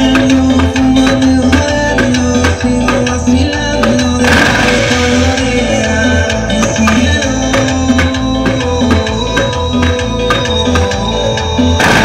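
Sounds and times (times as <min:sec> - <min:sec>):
loud music with low beat: 0:00.0 - 0:12.0.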